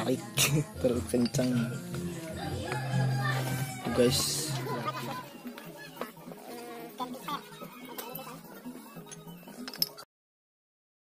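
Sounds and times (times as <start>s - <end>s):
insect buzzing: 6.3s - 7.4s.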